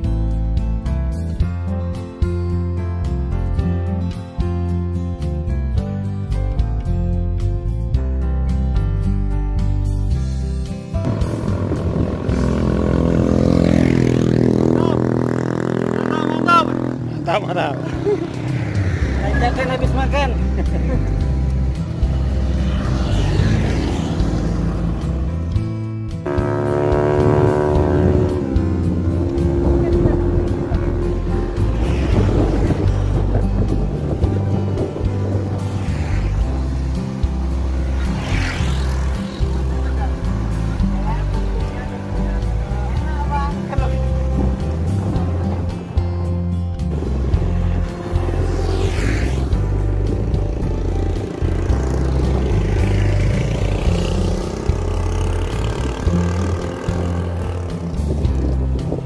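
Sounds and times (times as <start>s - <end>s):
motorcycles passing: 9.8s - 59.0s
wind rumbling on microphone: 11.0s - 14.7s, 27.5s - 41.7s, 43.6s - 59.0s.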